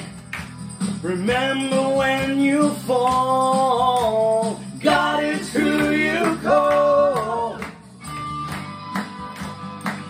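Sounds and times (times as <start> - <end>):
guitar-led band: 0.0 - 10.0
man singing worship song: 1.0 - 7.7.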